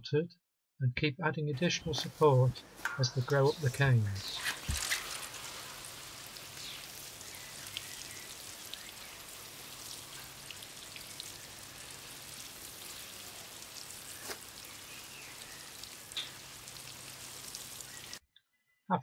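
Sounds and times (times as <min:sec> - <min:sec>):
watering can spray pattering: 0:01.9 - 0:18.2.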